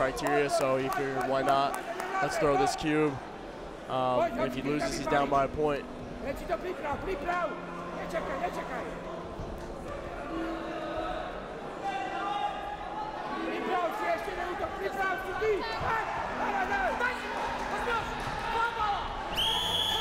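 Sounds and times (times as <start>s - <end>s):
referee's whistle blast: 19.4s - 20.0s.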